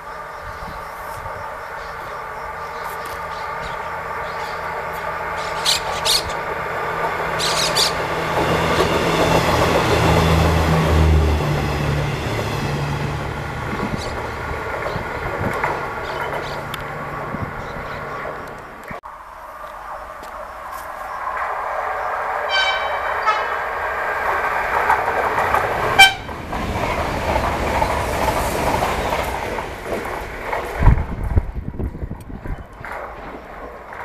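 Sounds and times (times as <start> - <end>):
passenger train passing: 0.0 - 34.0.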